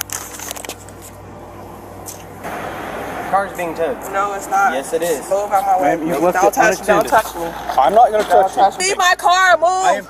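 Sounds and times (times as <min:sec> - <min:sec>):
vehicle passing: 0:00.8 - 0:10.0.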